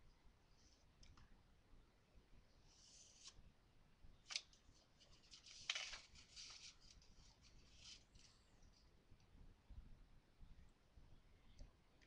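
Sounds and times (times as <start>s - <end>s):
paper sheet rustling: 4.3s - 8.4s.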